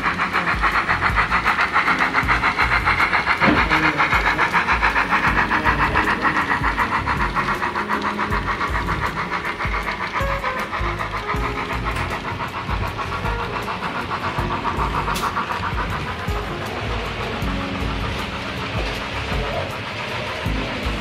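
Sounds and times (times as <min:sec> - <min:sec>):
model steam locomotive chuffing: 0:00.0 - 0:21.0.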